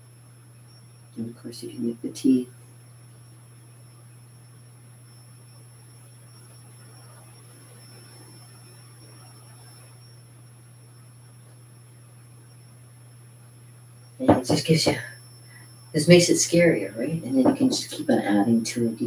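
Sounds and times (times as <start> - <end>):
low electrical hum: 0.0 - 19.0
thin high-pitched whine: 0.0 - 19.0.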